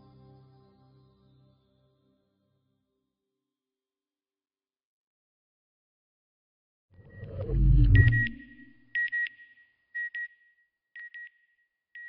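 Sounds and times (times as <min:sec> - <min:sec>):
low whoosh: 0:07.1 - 0:08.8
short high-pitched beeps: 0:07.3 - 0:09.4.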